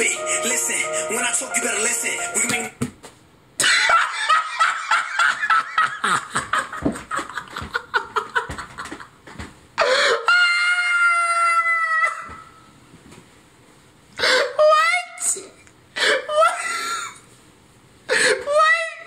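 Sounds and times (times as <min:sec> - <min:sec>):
man laughing hard: 0:03.6 - 0:09.0.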